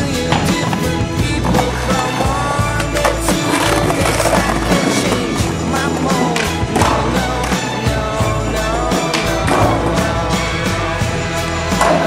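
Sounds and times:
skateboard wheels rolling on concrete: 0:00.0 - 0:10.8
music with steady beat: 0:00.0 - 0:12.0
skateboard clacking: 0:00.2 - 0:07.9, 0:11.4 - 0:12.0.

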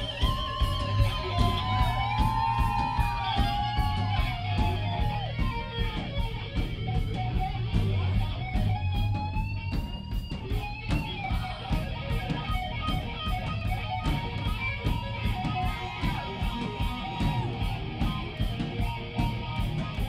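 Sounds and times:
bass line: 0:00.0 - 0:20.0
drums with steady cymbal beat: 0:00.0 - 0:20.0
electric guitar with bent notes: 0:00.0 - 0:20.0.

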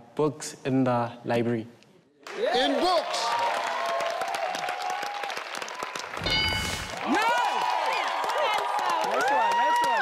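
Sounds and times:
audience applauding: 0:02.2 - 0:10.0.

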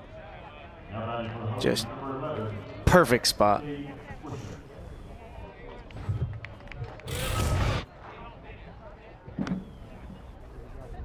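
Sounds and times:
ballpark ambience: 0:00.0 - 0:11.0
faint voices: 0:00.0 - 0:11.0
loud rushing noise: 0:07.1 - 0:07.9.

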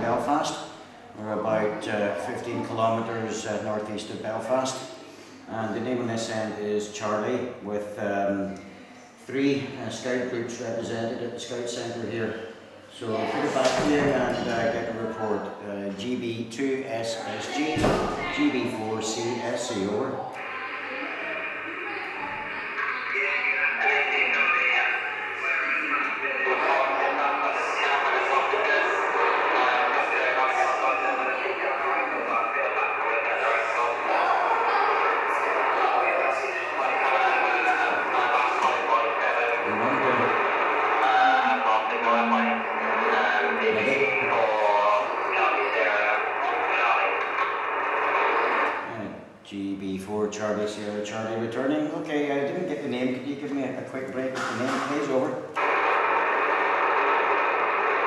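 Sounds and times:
radio band noise: 0:00.0 - 0:00.4, 0:11.9 - 0:15.6, 0:17.3 - 0:49.4, 0:54.1 - 0:58.0
voice over radio speaker: 0:17.4 - 0:49.1, 0:54.3 - 0:58.0.

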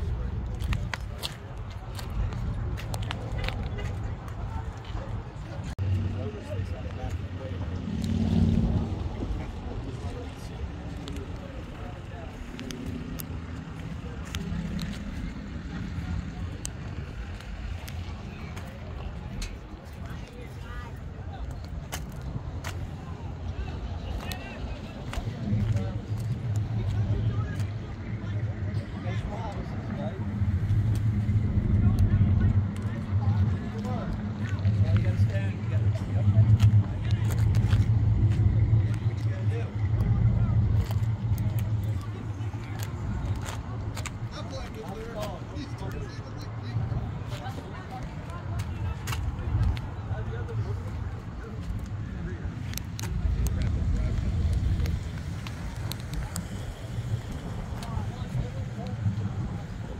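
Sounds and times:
background voices: 0:00.0 - 0:59.9
car engine idling: 0:00.0 - 0:59.9.

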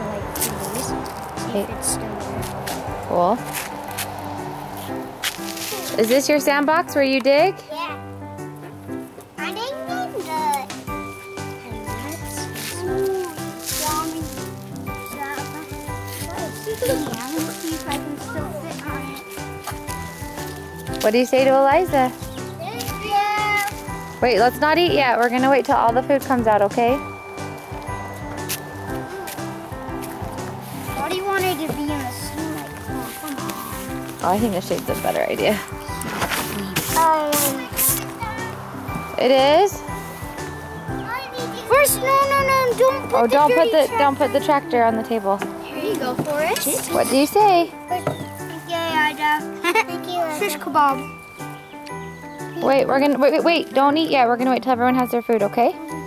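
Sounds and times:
background music with held notes: 0:00.0 - 0:56.0
children's voices: 0:09.4 - 0:10.8, 0:15.0 - 0:19.3, 0:22.6 - 0:23.8, 0:30.9 - 0:33.9, 0:36.6 - 0:38.6, 0:41.0 - 0:44.7, 0:45.6 - 0:47.1, 0:47.9 - 0:51.2.

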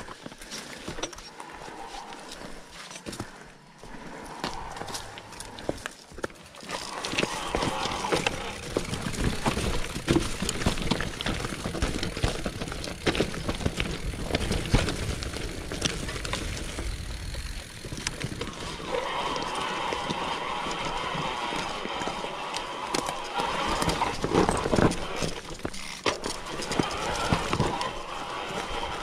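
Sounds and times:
bike tyre rumble on rocks: 0:00.0 - 0:29.0
bike rattling over stones: 0:04.6 - 0:29.0.

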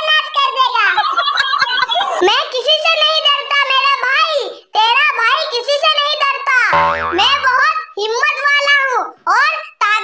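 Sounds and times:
comic sound effect: 0:06.8 - 0:07.6
high-pitched cartoon voice talking: 0:06.8 - 0:07.6.

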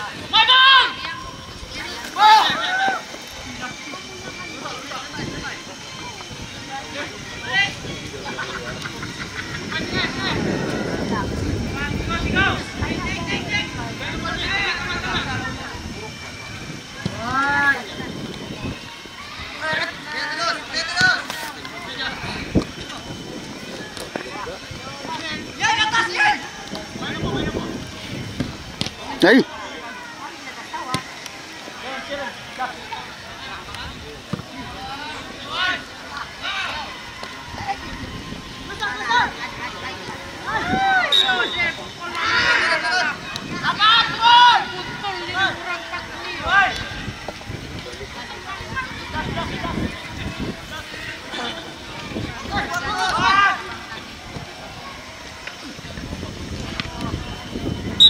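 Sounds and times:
people shouting: 0:00.0 - 0:05.2, 0:34.6 - 0:47.2, 0:48.0 - 0:54.0
players shouting and calling: 0:00.0 - 0:58.0
scattered voices: 0:00.0 - 0:58.0.

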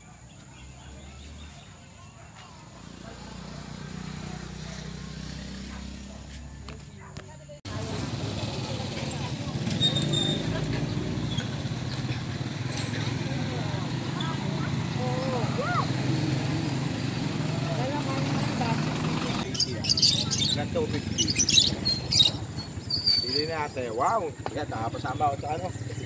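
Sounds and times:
indistinct voices and chatter: 0:00.0 - 0:26.0
low vehicle engine rumble: 0:00.0 - 0:26.0.

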